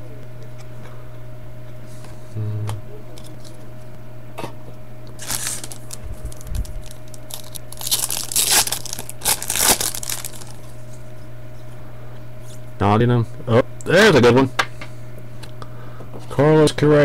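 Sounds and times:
foil wrapper tearing and crinkling: 5.2s - 10.8s.

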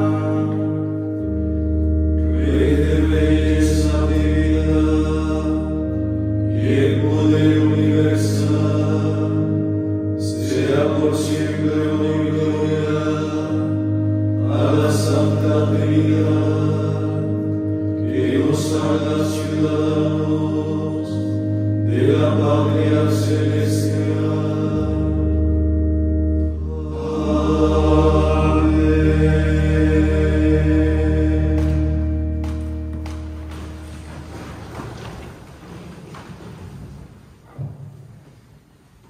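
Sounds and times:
men chanting a psalm: 0.0s - 1.2s, 2.0s - 25.5s, 26.5s - 32.3s
sustained instrumental drone: 0.0s - 35.1s.

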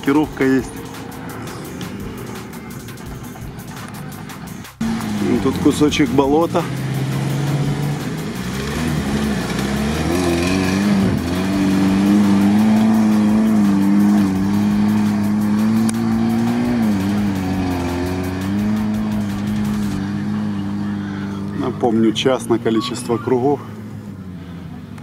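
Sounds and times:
car engine at high revs: 0.0s - 25.0s.

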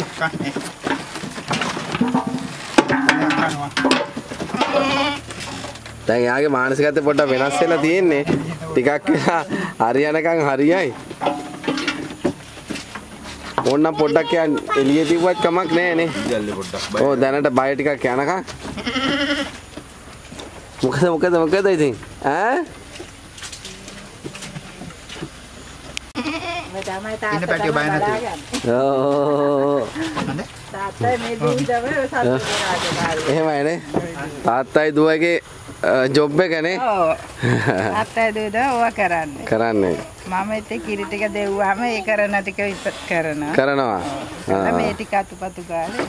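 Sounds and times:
goat bleating: 4.4s - 5.5s, 7.0s - 8.1s, 13.9s - 16.6s, 18.6s - 19.7s, 26.1s - 26.9s.

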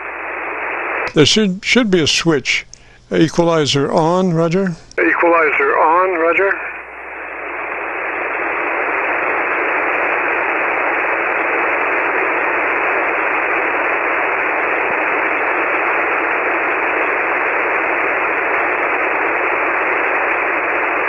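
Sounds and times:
radio band noise hiss: 0.0s - 21.0s.

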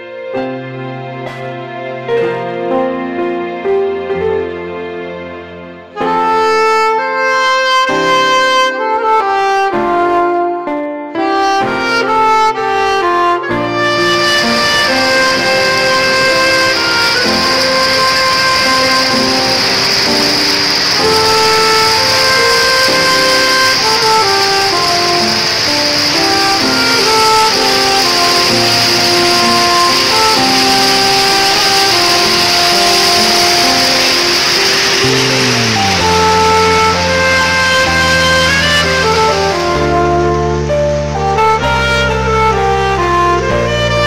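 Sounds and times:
instrumental music with held notes: 0.0s - 44.0s
steady hiss: 13.6s - 44.0s.

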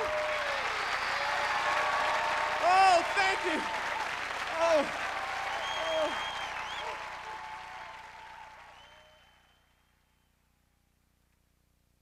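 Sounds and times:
shouts: 0.0s - 8.4s
audience applauding and cheering: 0.0s - 9.8s
high whistles: 0.6s - 1.5s, 5.5s - 7.0s, 8.7s - 10.3s.

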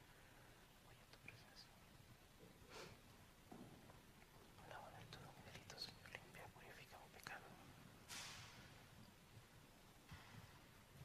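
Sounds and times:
faint whispered voice: 0.8s - 1.9s, 4.5s - 7.8s.

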